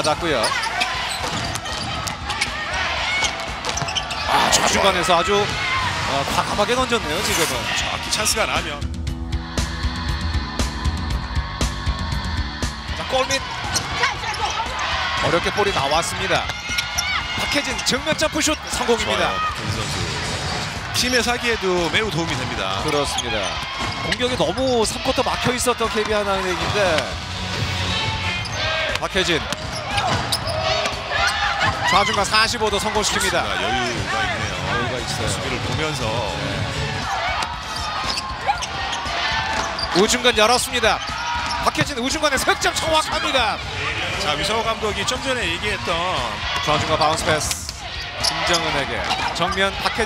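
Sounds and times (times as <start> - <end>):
shoes squeaking on court: 0.0 - 4.8, 28.4 - 31.0, 37.4 - 40.2, 41.0 - 42.0, 48.0 - 49.7
arena crowd noise: 0.0 - 50.0.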